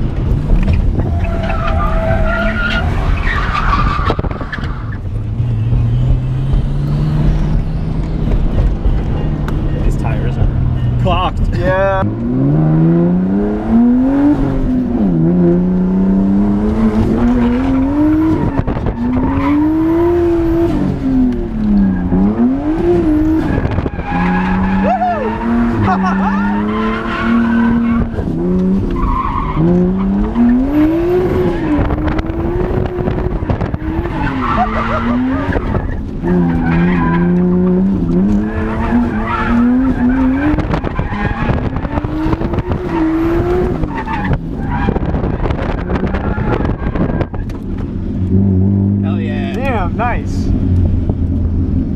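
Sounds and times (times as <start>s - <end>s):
car engine revving: 0.0s - 51.9s
tire squeal: 0.7s - 9.3s, 16.8s - 20.8s, 21.6s - 32.9s, 33.8s - 47.6s.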